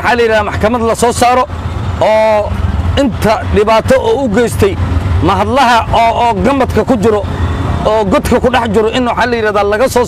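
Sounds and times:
auto-rickshaw engine rumble: 0.0 - 10.0
man talking: 0.0 - 10.0.

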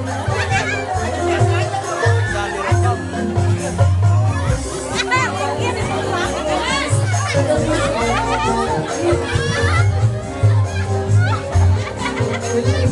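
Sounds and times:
crowd voices and shouts: 0.0 - 12.9
woman singing into microphone: 4.7 - 9.9, 12.2 - 12.9.

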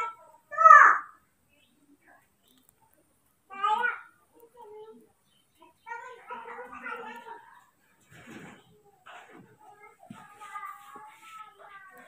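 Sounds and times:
soft rough sounds: 1.5 - 12.0.

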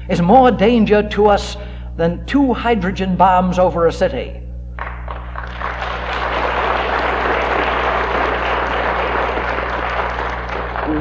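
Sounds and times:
steady low hum: 0.0 - 11.0
audience applauding: 4.8 - 11.0.

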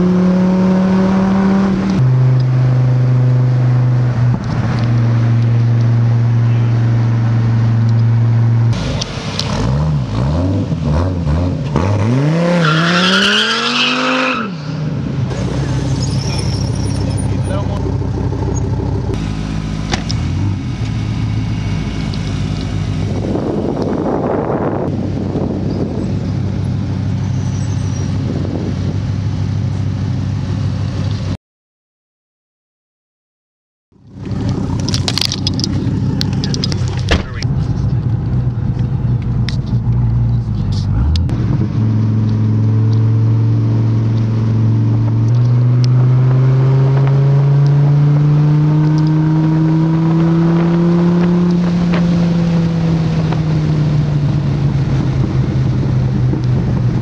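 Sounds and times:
road noise: 0.0 - 31.4, 33.9 - 57.0.

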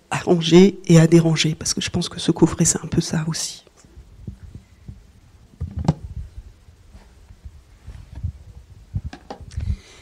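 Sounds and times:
microphone handling thumps: 4.0 - 9.8.

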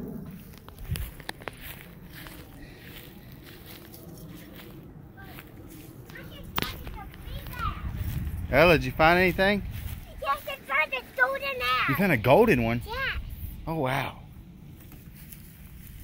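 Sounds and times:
footsteps on grass: 0.1 - 13.6, 14.6 - 16.0
faint children's voices: 1.6 - 8.9, 9.7 - 12.1.

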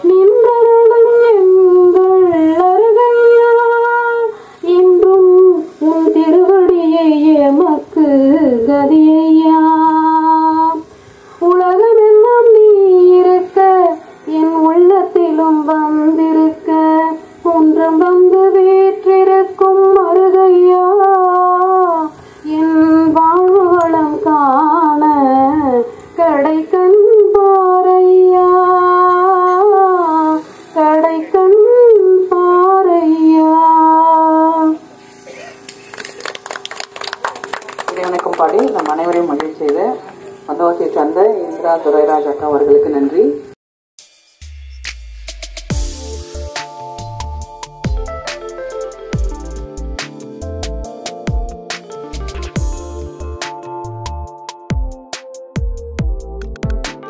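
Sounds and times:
woman singing: 0.0 - 10.8, 11.4 - 34.8.

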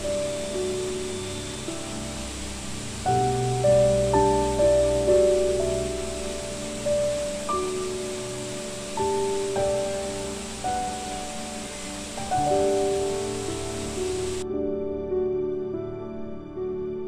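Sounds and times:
rushing water hiss: 0.0 - 14.4
slow solo piano music: 0.0 - 17.0.

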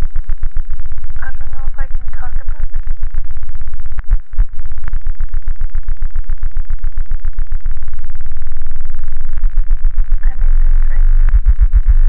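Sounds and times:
distorted stuttering noise drone: 0.0 - 12.0.

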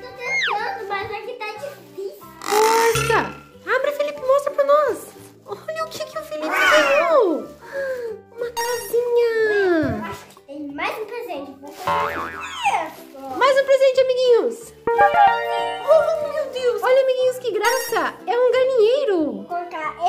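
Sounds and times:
children's music with bass: 0.0 - 0.8, 2.2 - 4.4, 8.5 - 10.2, 11.8 - 13.0, 14.8 - 18.2
cartoon sliding sound effects: 11.9 - 12.8.

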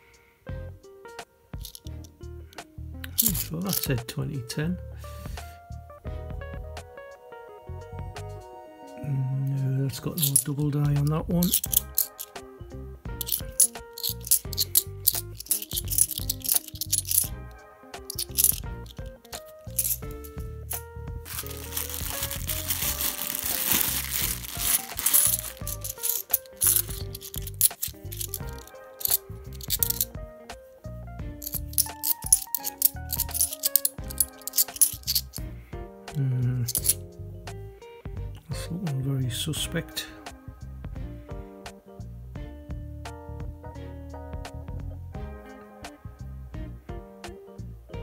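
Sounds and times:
background music with steady beat: 0.0 - 48.0
coins clinking in hand: 1.6 - 1.9, 3.1 - 3.9, 10.1 - 12.4, 13.2 - 17.3, 18.1 - 20.3, 21.3 - 30.1, 31.4 - 35.4, 36.7 - 37.0
plastic coin bag rustling: 1.6 - 1.9, 3.1 - 3.9, 10.0 - 12.4, 13.2 - 17.3, 18.1 - 20.4, 21.3 - 30.1, 31.4 - 35.4, 36.6 - 37.0.

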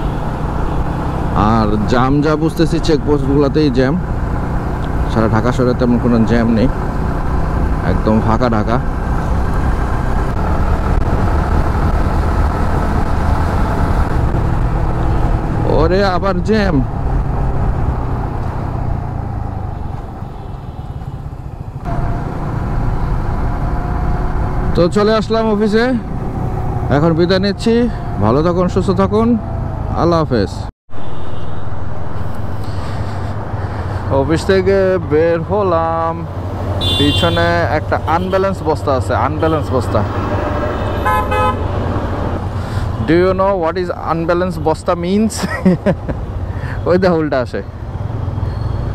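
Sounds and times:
road noise: 0.0 - 48.9
vehicle horn toots: 36.8 - 38.5, 40.7 - 41.7.

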